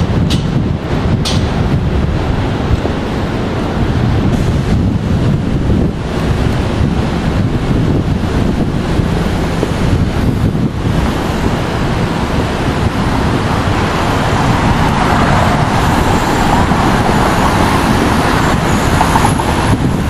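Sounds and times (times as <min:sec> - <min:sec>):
city street traffic: 0:00.0 - 0:20.0
wind rumbling on microphone: 0:00.0 - 0:20.0.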